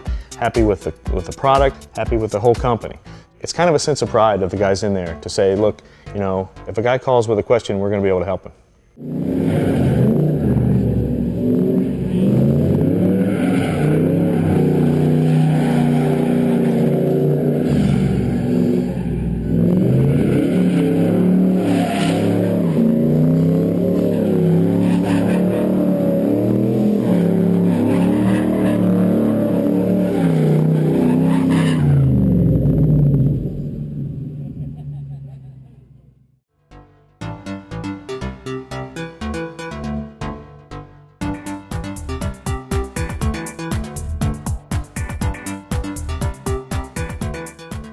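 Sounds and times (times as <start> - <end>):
car engine revving hard: 9.0 - 34.8.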